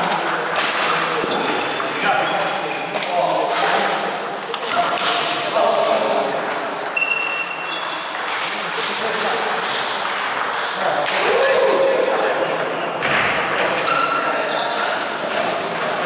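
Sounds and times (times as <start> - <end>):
table tennis balls clicking: 0.0 - 2.4, 3.5 - 11.3, 14.6 - 16.0
murmur of voices: 0.0 - 16.0
high squeak: 7.0 - 8.0.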